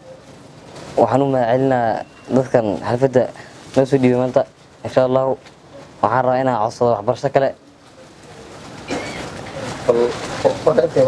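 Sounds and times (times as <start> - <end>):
person speaking: 0.9 - 11.0
bird chirping faintly: 1.1 - 2.9.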